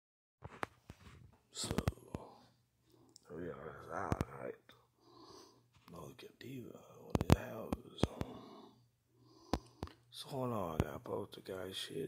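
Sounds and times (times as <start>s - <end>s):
man speaking quietly: 1.5s - 2.5s, 3.2s - 4.8s, 5.9s - 8.7s, 10.1s - 12.0s
sharp clicks: 7.1s - 8.4s, 9.4s - 10.0s.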